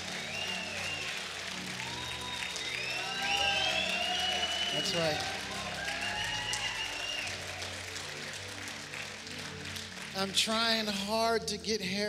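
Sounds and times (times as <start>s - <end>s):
congregation applauding: 0.0s - 12.0s
keyboard sustained chords: 0.0s - 12.0s.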